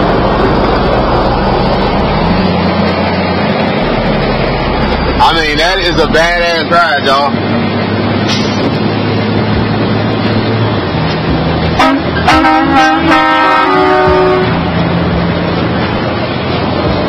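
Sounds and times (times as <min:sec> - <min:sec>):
truck engine and road noise: 0:00.0 - 0:17.0
multi-tone horn: 0:11.8 - 0:14.7.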